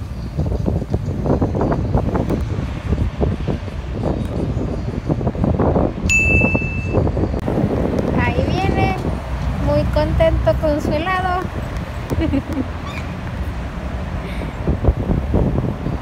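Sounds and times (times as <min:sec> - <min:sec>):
steady outdoor rumble: 0:00.0 - 0:16.0
wind gusts on microphone: 0:00.0 - 0:16.0
high electronic beep: 0:06.1 - 0:07.1.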